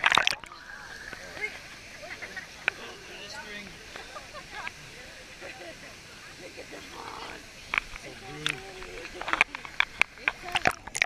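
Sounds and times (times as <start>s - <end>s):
sharp water splashes: 0.0s - 2.9s, 6.4s - 11.0s
falling water rushing: 0.0s - 11.0s.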